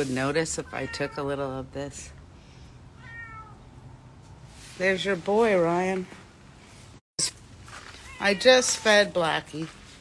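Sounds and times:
cat meowing: 3.0 - 3.7.

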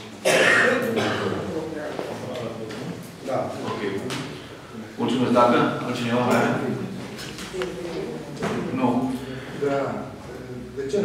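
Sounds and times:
man clearing his throat: 0.2 - 1.5
man coughing: 0.2 - 1.5.

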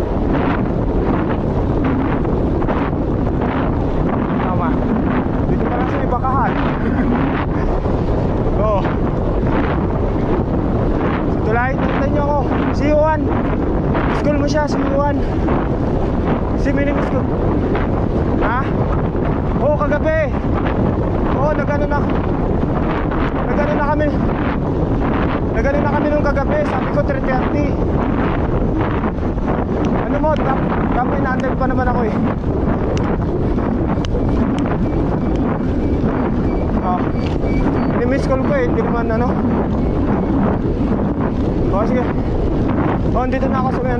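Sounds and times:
wind rushing over microphone: 0.0 - 43.9.

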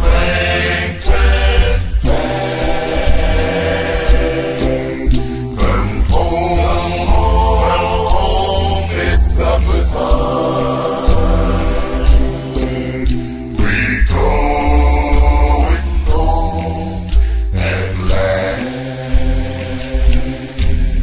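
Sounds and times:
a cappella gospel singing: 0.0 - 21.0.

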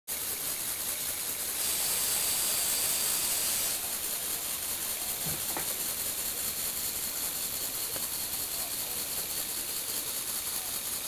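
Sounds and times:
electric motor and gears whirring: 0.1 - 11.0.

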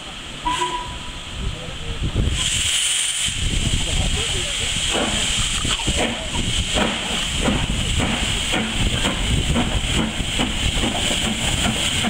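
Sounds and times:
steam locomotive hissing: 0.0 - 12.0.

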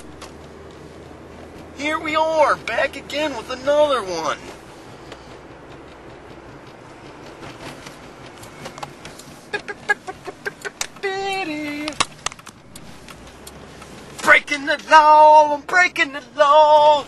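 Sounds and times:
car cabin road noise: 0.0 - 17.0.

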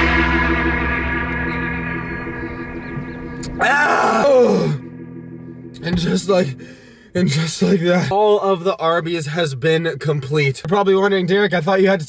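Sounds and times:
background music: 0.0 - 8.4
man groaning in disgust: 3.6 - 4.8.

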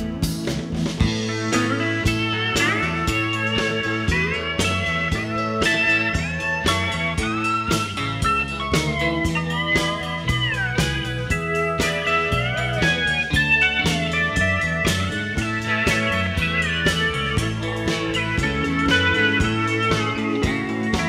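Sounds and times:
bass: 0.0 - 21.0
steady drum beat: 0.0 - 21.0
steel guitar lead with bent notes: 0.0 - 21.0.

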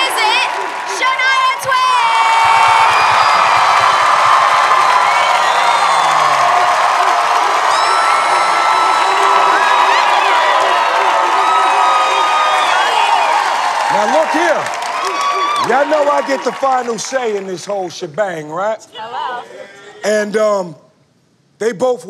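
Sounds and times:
audience cheering: 0.0 - 18.0.

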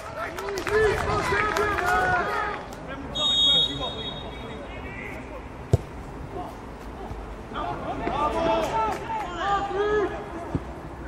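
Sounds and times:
referee's whistle: 3.1 - 4.4
football being kicked: 5.7 - 6.0.

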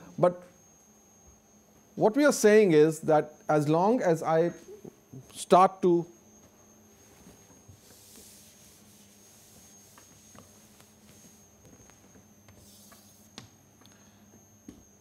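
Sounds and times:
chalk scratching on blackboard: 7.8 - 13.3.

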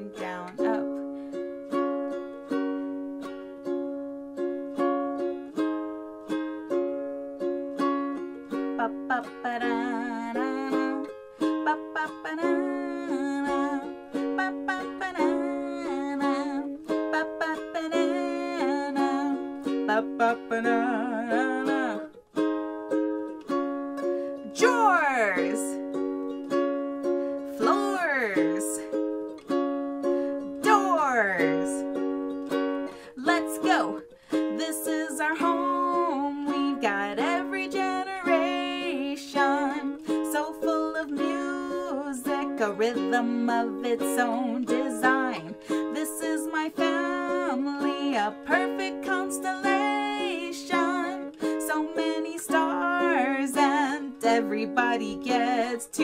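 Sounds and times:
woman singing: 0.0 - 1.0, 8.1 - 22.2, 24.4 - 25.8, 27.4 - 29.0, 30.5 - 32.0, 32.9 - 56.0
ukulele strumming: 0.0 - 56.0.

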